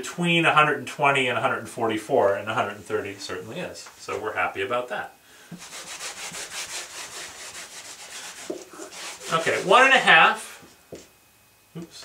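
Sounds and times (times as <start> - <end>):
eraser rubbing on whiteboard: 5.6 - 10.1.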